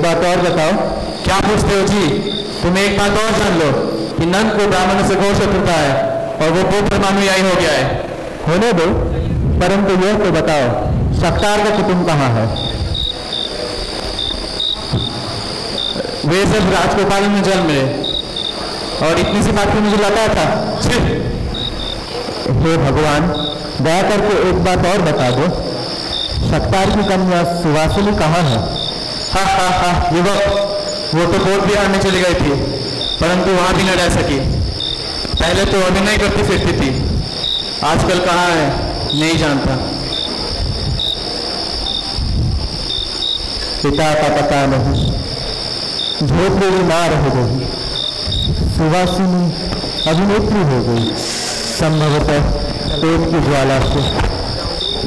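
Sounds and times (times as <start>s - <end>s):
man speaking: 0.0s - 12.9s, 15.8s - 21.6s, 22.4s - 34.6s, 35.4s - 37.2s, 37.8s - 40.8s, 43.7s - 45.4s, 46.2s - 47.7s, 48.6s - 55.0s
cricket chirping: 0.0s - 55.0s.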